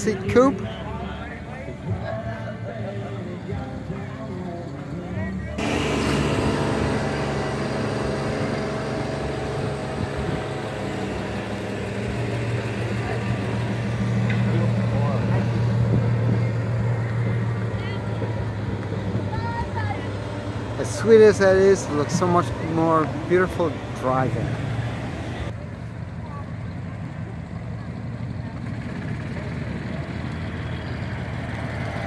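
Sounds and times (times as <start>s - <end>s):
generator humming: 0.0s - 25.5s.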